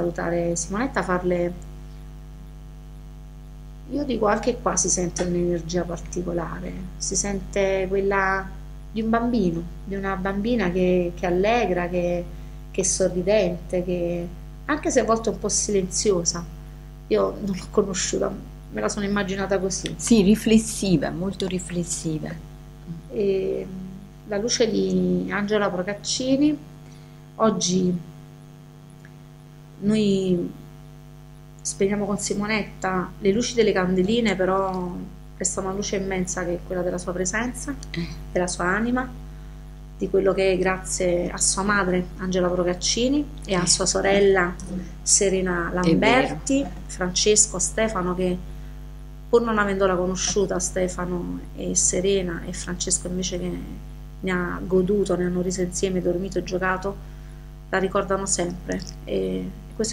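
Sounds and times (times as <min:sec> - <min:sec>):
woman's voice: 0:00.0 - 0:01.6, 0:03.8 - 0:16.5, 0:17.1 - 0:26.7, 0:27.4 - 0:28.1, 0:29.8 - 0:30.6, 0:31.6 - 0:39.2, 0:40.0 - 0:48.5, 0:49.4 - 0:57.0, 0:57.8 - 0:59.9
electrical mains hum: 0:00.0 - 0:59.9.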